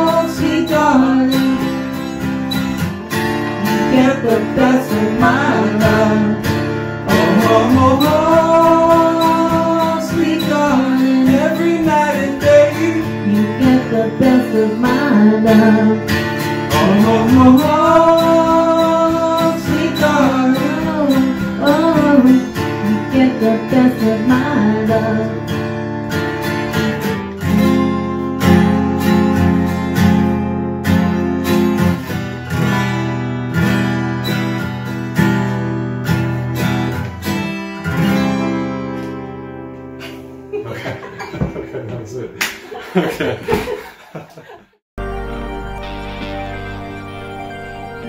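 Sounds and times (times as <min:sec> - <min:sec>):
strummed acoustic guitar: 0:00.0 - 0:41.8
person singing wordless notes: 0:03.6 - 0:25.4, 0:45.0 - 0:48.0.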